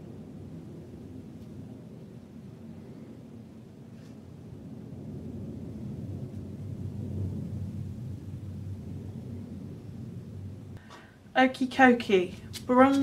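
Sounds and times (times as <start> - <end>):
low steady rumble: 0.0 - 13.0.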